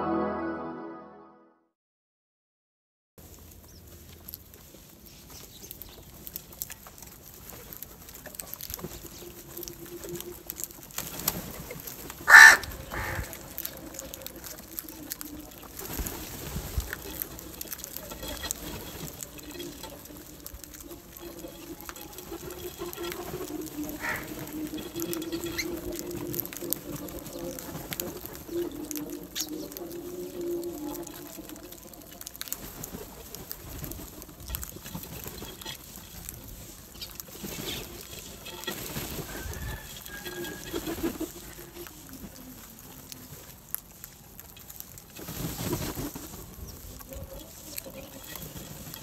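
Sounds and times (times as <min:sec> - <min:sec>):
crows pecking on concrete: 0:03.2 - 0:49.0
crow softer call: 0:12.3 - 0:13.6, 0:24.0 - 0:24.3
crow cawing: 0:12.3 - 0:13.7, 0:24.0 - 0:24.4
low wavering cooing call: 0:12.3 - 0:15.9, 0:23.3 - 0:33.2.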